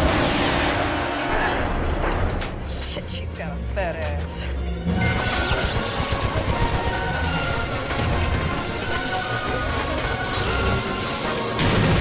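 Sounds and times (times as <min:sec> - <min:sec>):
orchestral action music: 0:00.0 - 0:12.0.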